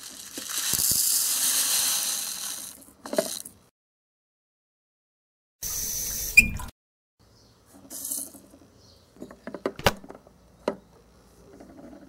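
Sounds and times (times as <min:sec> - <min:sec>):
granules pouring into plastic bowl: 0:00.0 - 0:03.6.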